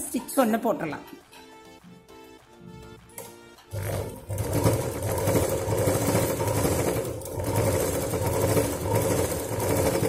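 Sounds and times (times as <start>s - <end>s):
sewing machine running: 3.7s - 10.0s.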